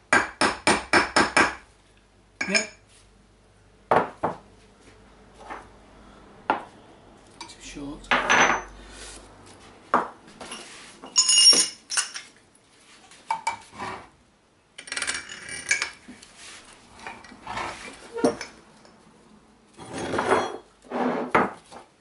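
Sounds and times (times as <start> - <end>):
metal parts clinking on wood: 11.1 - 12.3.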